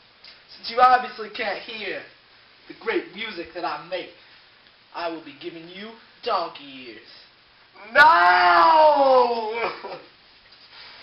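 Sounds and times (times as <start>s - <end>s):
person's long vocal cry: 7.8s - 10.0s.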